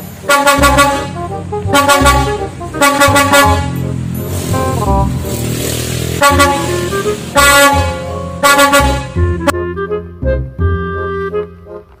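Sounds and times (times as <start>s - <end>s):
multi-tone truck horn blasts: 0.0s - 11.6s
low steady vehicle sound: 0.0s - 12.0s.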